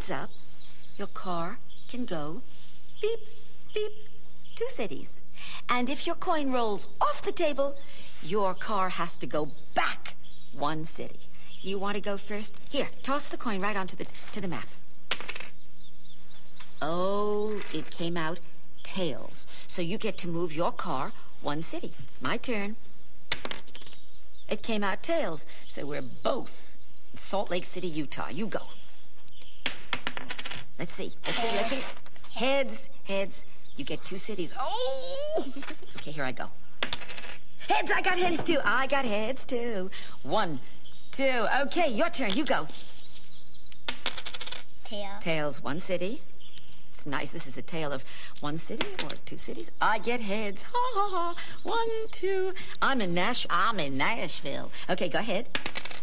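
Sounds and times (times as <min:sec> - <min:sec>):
coin landing on tabletop: 0:15.1 - 0:15.5, 0:36.8 - 0:37.4, 0:43.9 - 0:44.6.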